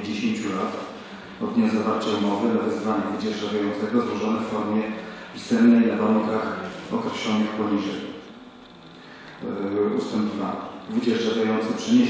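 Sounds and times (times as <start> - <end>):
man speaking into a microphone: 0.0 - 8.3, 9.4 - 12.0
room sound: 0.0 - 12.0.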